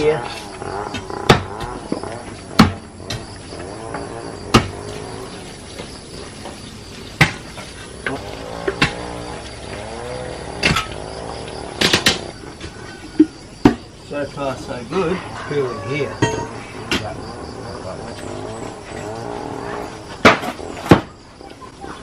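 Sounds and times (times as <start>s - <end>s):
sharp knocks: 0.9s - 3.3s.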